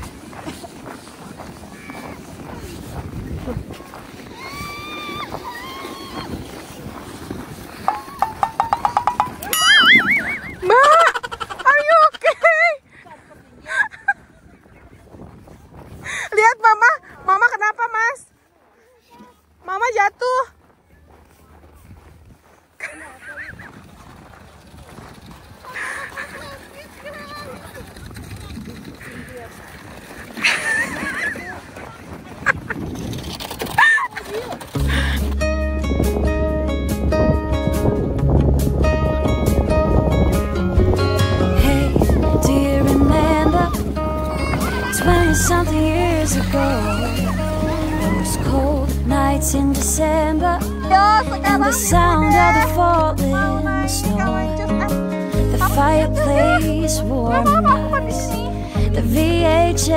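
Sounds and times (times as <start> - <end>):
child squealing with excitement: 4.3 - 6.3, 43.6 - 45.5
people yelping: 4.3 - 6.4, 42.9 - 48.9
child giggling: 9.7 - 12.8, 25.6 - 27.9, 55.6 - 58.6
person calling out: 53.4 - 54.8.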